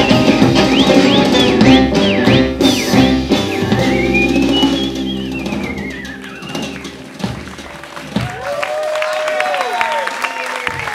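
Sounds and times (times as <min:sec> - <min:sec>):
live band final chord: 0:00.0 - 0:08.3.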